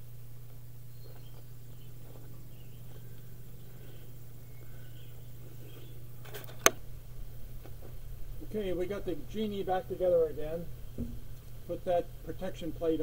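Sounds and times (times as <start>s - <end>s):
faint insect calls: 0.0s - 13.0s
steady low hum: 0.0s - 13.0s
bird calls: 0.8s - 6.6s
sharp click: 6.3s - 6.8s.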